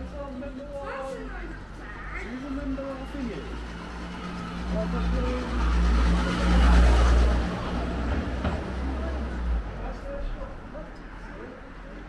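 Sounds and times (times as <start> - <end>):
vehicle engine humming: 0.0 - 10.8.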